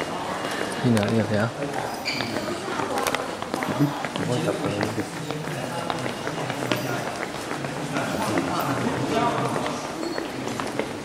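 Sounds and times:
footsteps: 0:00.0 - 0:11.0
people talking in a hall: 0:00.0 - 0:11.0.

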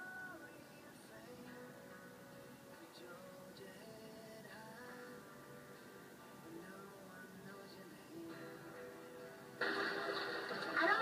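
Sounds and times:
soft background music: 0:00.0 - 0:11.0
voices: 0:10.5 - 0:11.0.

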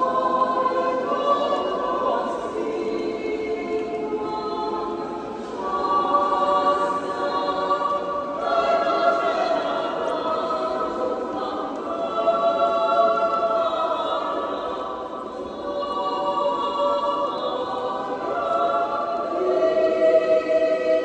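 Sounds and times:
choir singing unaccompanied: 0:00.0 - 0:21.0.

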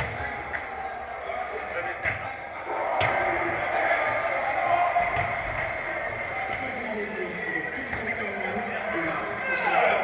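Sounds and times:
players' voices echoing: 0:00.0 - 0:10.0.

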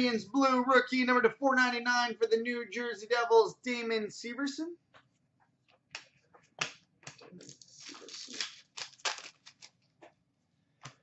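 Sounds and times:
cards clicking and rustling: 0:06.0 - 0:09.8.

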